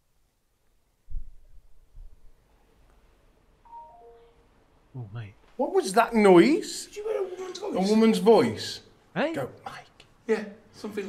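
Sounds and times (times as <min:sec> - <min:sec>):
faint clear tones stepping down: 0:03.5 - 0:05.6.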